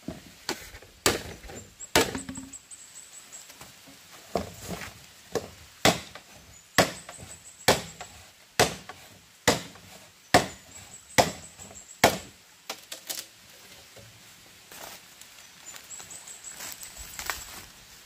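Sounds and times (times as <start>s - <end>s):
machete chopping bamboo: 1.0s - 2.5s, 5.3s - 13.2s.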